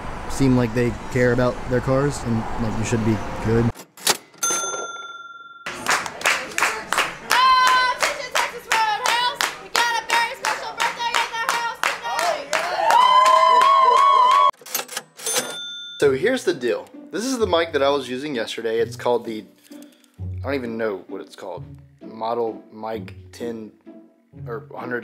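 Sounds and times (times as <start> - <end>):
people clapping in rhythm: 5.7 - 14.5.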